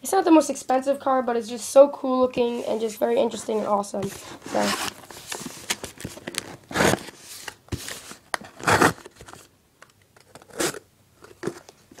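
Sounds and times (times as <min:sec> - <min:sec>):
cardboard clicks and scrapes: 0:04.0 - 0:09.5
cardboard box tearing: 0:04.5 - 0:09.4, 0:10.4 - 0:10.8.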